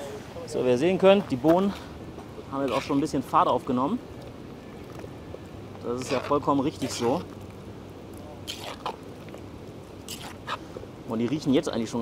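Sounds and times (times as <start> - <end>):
spoon stirring wet food: 8.4 - 9.4, 10.0 - 10.6.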